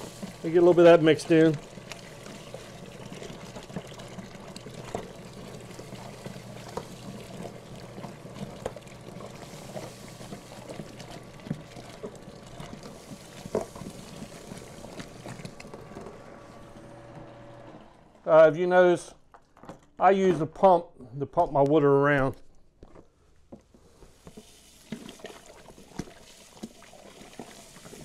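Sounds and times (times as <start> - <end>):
grain pouring hiss: 0.0 - 4.3, 5.0 - 11.6, 12.7 - 15.8, 23.9 - 28.0.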